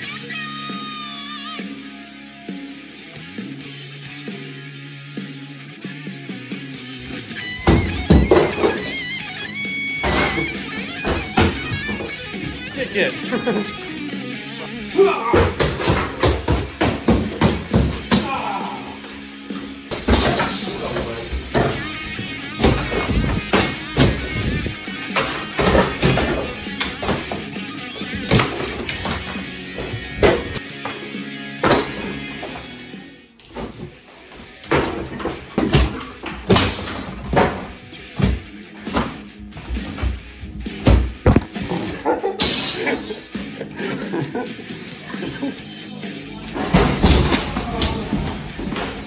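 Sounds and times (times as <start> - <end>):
background music: 0.0 - 49.0
hammer breaking drywall: 7.6 - 8.9, 15.4 - 18.4, 22.6 - 27.4, 28.1 - 30.6, 31.6 - 32.7, 34.6 - 39.2.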